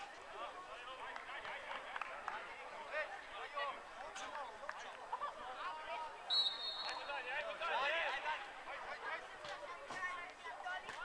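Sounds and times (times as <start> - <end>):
referee's whistle blast: 6.3 - 7.2.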